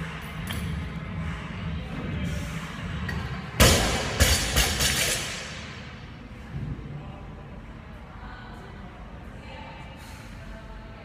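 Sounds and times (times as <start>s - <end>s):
background music: 0.0s - 6.4s.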